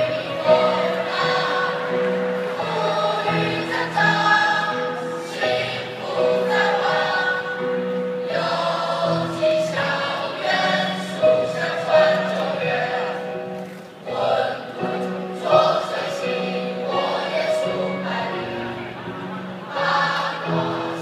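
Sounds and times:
choir singing held notes: 0:00.0 - 0:21.0.

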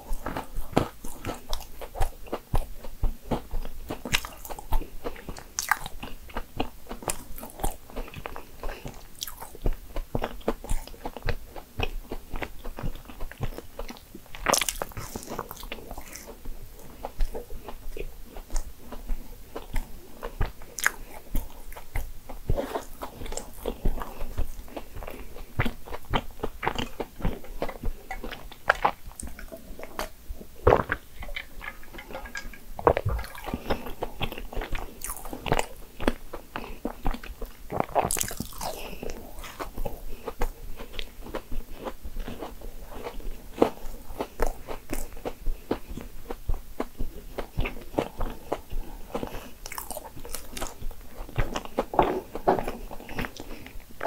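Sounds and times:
close-miked chewing of cake: 0:00.0 - 0:54.0.

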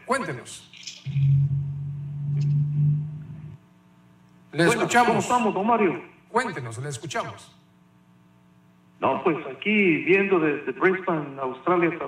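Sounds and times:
telephone line hum: 0:01.1 - 0:03.6.

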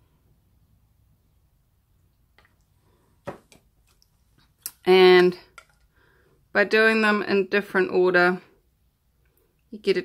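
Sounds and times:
woman speaking: 0:04.7 - 0:05.5, 0:06.6 - 0:08.5, 0:09.7 - 0:10.0.

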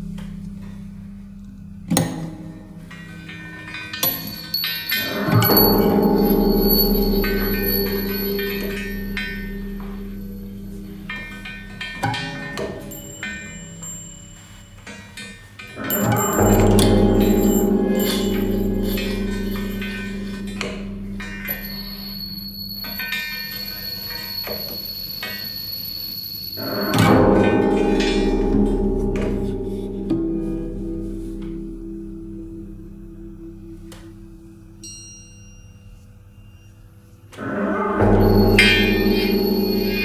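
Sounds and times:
steel cauldron bell-like strokes: 0:02.8 - 0:40.0
light knocks and clinks: 0:03.6 - 0:10.4.

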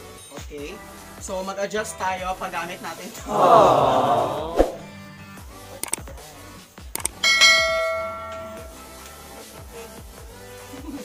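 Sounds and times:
click: 0:07.0 - 0:07.2
notification bell ding: 0:07.1 - 0:09.0.

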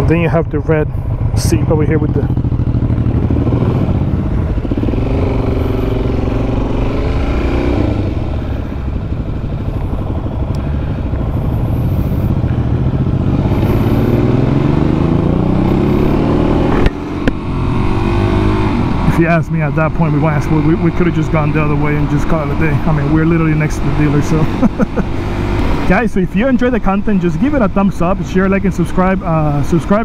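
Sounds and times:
motorcycle engine accelerating: 0:00.0 - 0:30.0.

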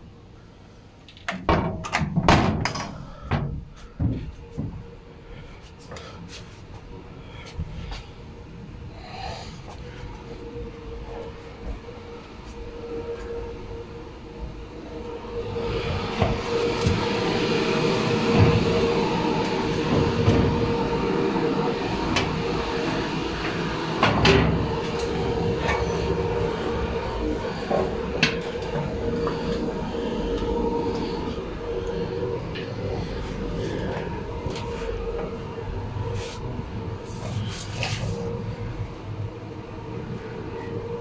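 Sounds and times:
mechanical hum: 0:00.0 - 0:41.0.

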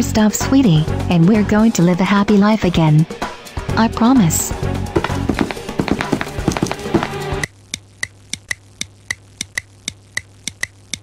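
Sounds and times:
background music with drum hits: 0:04.5 - 0:08.2
fast even ticking: 0:05.0 - 0:11.0.

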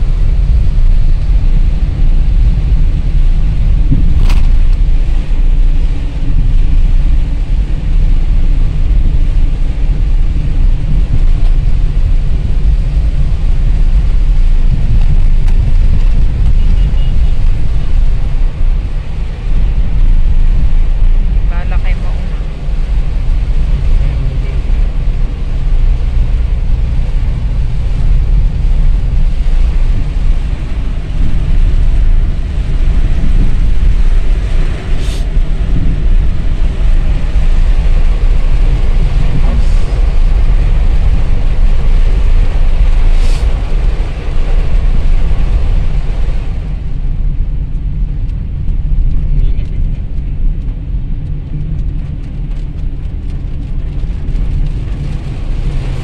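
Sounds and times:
rain on car: 0:00.0 - 0:56.0
road and engine rumble: 0:00.0 - 0:56.0.

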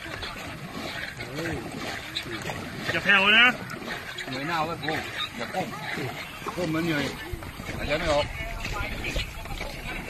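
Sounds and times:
paddles stroking through water: 0:00.0 - 0:10.0
men talking: 0:00.8 - 0:09.7.

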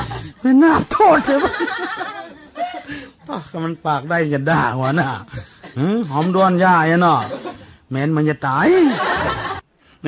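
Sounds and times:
monk preaching: 0:00.0 - 0:01.7, 0:03.3 - 0:09.4.

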